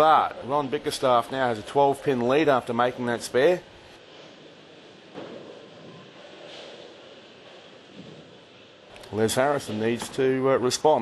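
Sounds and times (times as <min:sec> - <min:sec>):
bowling hall background noise: 0:00.0 - 0:11.0.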